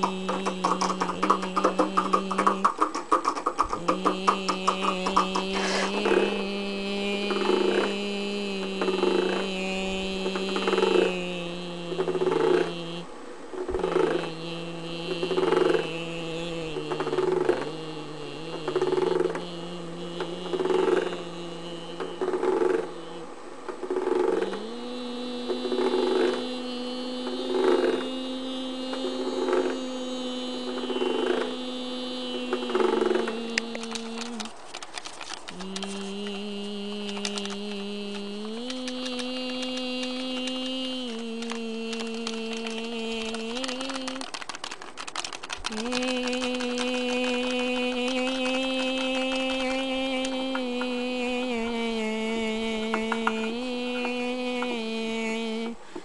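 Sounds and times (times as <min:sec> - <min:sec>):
hand movement sounds: 0:00.0 - 0:13.0, 0:13.7 - 0:56.0
person humming: 0:00.0 - 0:56.0.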